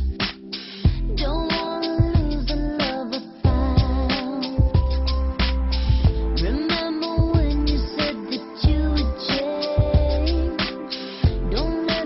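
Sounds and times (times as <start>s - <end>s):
deep bass line: 0.0s - 0.2s, 0.9s - 2.8s, 3.5s - 8.0s, 8.6s - 10.6s, 11.2s - 11.9s
woman singing: 1.1s - 4.9s, 6.4s - 12.0s
drum hits: 3.5s - 8.1s, 8.7s - 12.0s.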